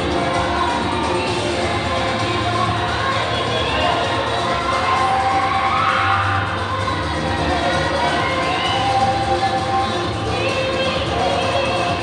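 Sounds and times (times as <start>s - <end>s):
children cheering and shouting: 0.0s - 12.0s
dance music: 0.0s - 12.0s.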